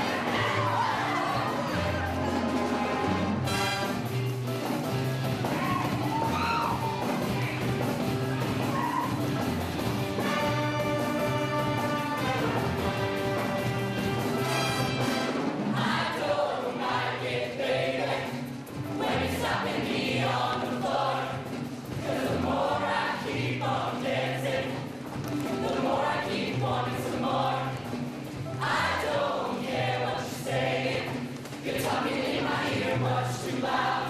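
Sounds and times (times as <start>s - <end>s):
choir singing: 0.0s - 3.2s, 15.6s - 24.9s, 25.6s - 27.9s, 28.6s - 34.0s.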